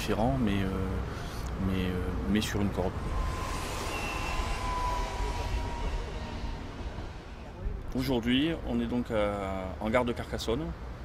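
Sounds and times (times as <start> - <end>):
train rumbling: 0.8 - 9.6
high-pitched train squeal: 2.1 - 9.1.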